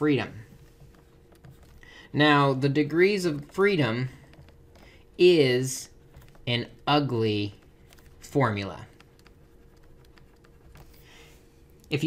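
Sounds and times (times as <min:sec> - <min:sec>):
faint steady hum: 0:00.0 - 0:12.0
stylus tapping on tablet screen: 0:08.8 - 0:11.3.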